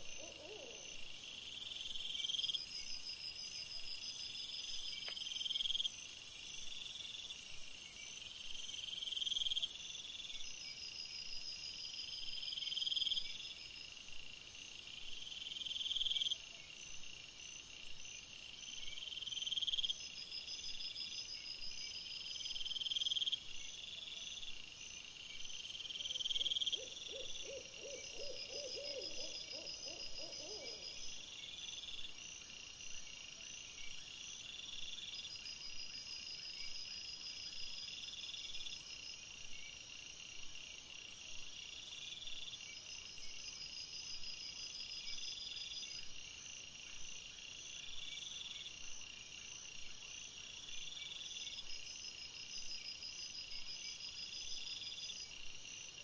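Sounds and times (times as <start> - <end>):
owl hooting: 0.0 - 1.1, 26.8 - 30.9
insects chirping: 0.0 - 56.0.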